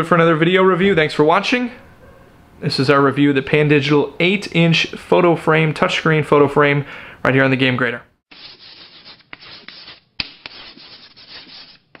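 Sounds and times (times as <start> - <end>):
scratchy rubbing strokes: 8.3 - 12.0.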